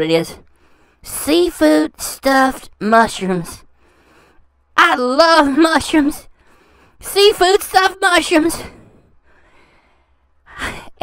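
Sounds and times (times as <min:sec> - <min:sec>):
short breath: 0:00.5 - 0:01.0, 0:03.7 - 0:04.6, 0:06.3 - 0:07.0, 0:08.7 - 0:10.9
person speaking: 0:01.0 - 0:03.6, 0:04.8 - 0:06.3, 0:07.0 - 0:08.8.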